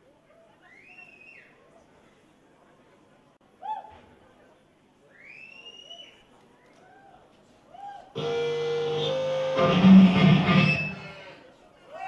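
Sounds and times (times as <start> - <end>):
electric guitar chords: 8.2 - 11.2.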